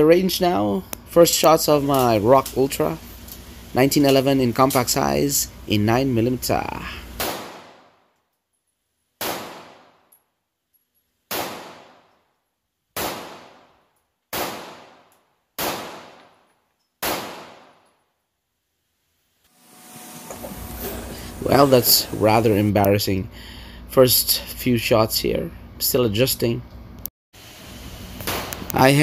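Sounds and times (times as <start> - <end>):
pistol shots with echo: 7.2 - 8.0, 9.2 - 10.0, 11.3 - 12.1, 13.0 - 15.0, 15.6 - 16.3, 17.0 - 17.8.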